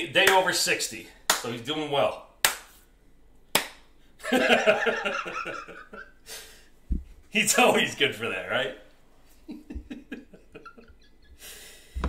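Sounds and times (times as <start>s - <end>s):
man laughing: 4.2s - 6.2s, 9.4s - 11.4s
quiet breathing: 11.3s - 12.0s.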